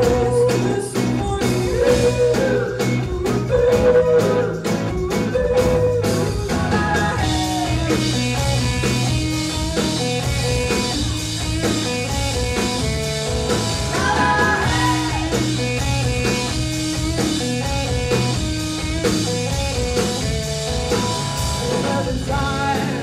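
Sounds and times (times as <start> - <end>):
rock band playing live: 0.0 - 23.0.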